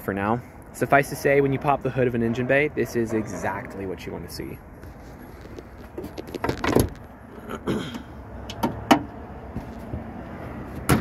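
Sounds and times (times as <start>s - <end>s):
car hood metallic knocks and clicks: 8.5s - 9.1s, 10.8s - 11.0s.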